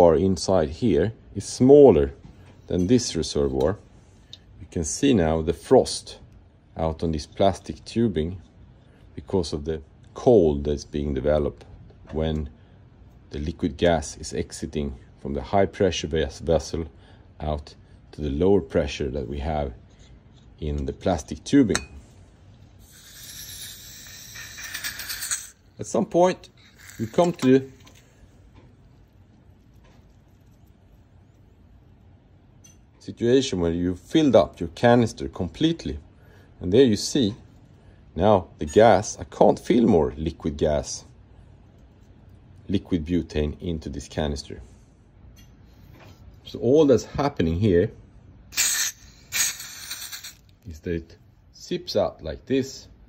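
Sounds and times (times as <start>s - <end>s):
butane gas hissing: 22.8s - 25.7s, 26.5s - 28.3s, 48.5s - 50.5s.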